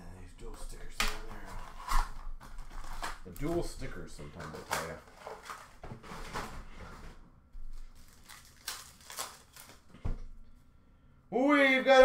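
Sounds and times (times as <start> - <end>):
wrapper ripping: 1.4 - 6.4, 7.7 - 9.9
foil wrappers rustling: 1.4 - 6.6, 7.6 - 10.0.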